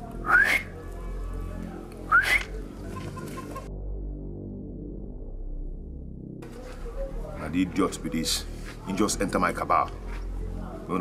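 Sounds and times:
quiet background music: 0:00.0 - 0:11.0
short rising whistles: 0:00.2 - 0:00.7, 0:02.1 - 0:02.5.

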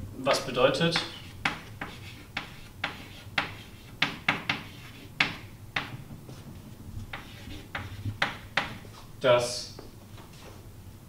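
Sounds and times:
chalk writing on blackboard: 0:01.0 - 0:06.0, 0:07.1 - 0:08.9.

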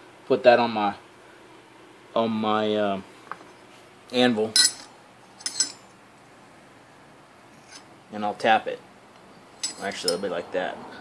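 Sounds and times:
steady background hiss: 0:00.0 - 0:11.0
faint handling sound: 0:04.6 - 0:05.9, 0:09.6 - 0:10.3.

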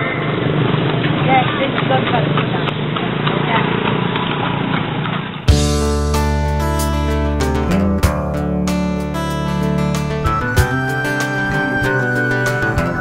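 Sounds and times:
strummed acoustic guitar music: 0:05.4 - 0:13.0.

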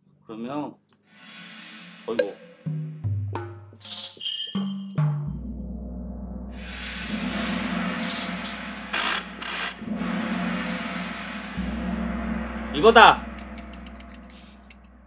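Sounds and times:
rising metallic wash: 0:01.1 - 0:02.7, 0:06.5 - 0:15.0
sharp percussion hits: 0:01.1 - 0:15.0
pitched drum notes: 0:04.6 - 0:15.0
low rolling drum rumble: 0:05.8 - 0:15.0.

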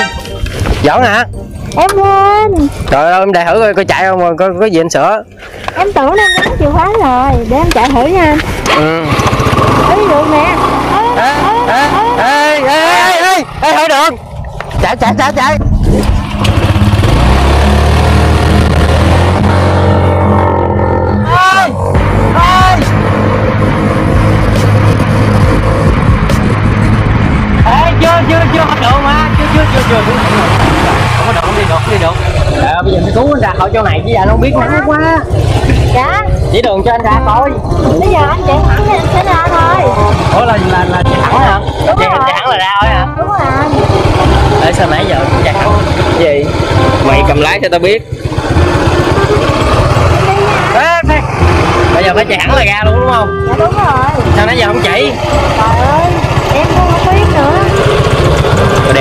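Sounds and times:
motorbike engine hum: 0:00.0 - 0:59.0
indistinct voices: 0:05.6 - 0:59.0
wind rushing over microphone: 0:05.8 - 0:10.0, 0:22.9 - 0:36.8.

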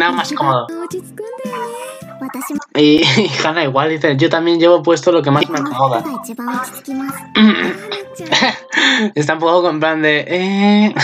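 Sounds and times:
girl's character voice speaking: 0:00.0 - 0:02.8, 0:05.4 - 0:08.4
light background music: 0:00.0 - 0:03.0, 0:05.2 - 0:09.8.

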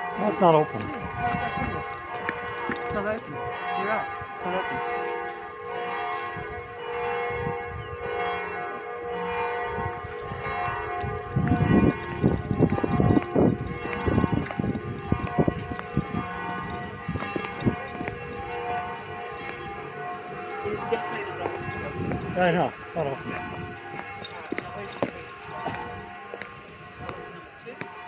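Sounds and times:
church bells ringing: 0:00.0 - 0:28.0
loud low knocks and bumps: 0:11.0 - 0:18.5.

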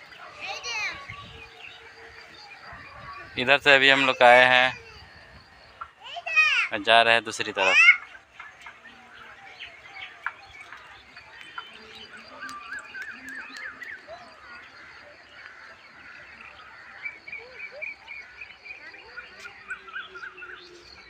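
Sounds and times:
small animals chirping and trilling: 0:00.0 - 0:21.0.

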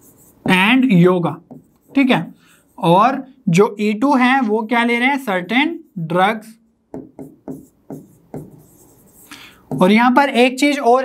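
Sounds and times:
marker pen writing on whiteboard: 0:00.0 - 0:10.2.

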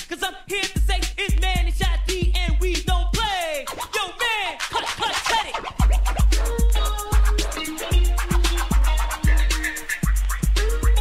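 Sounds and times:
turntable scratching: 0:00.0 - 0:11.0
booming kick drum beat: 0:00.6 - 0:03.6, 0:05.8 - 0:11.0.

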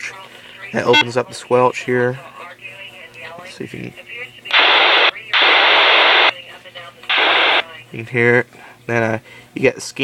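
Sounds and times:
radio static hiss bursts: 0:04.5 - 0:06.5, 0:07.1 - 0:07.7.

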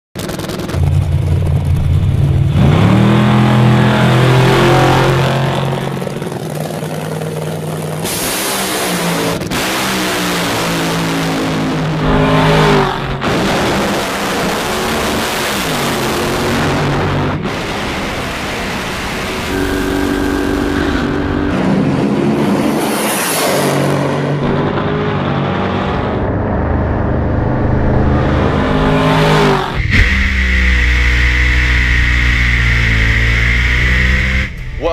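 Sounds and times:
low loud drag car engine: 0:00.2 - 0:34.9
racing car engines at full throttle: 0:00.2 - 0:34.9.

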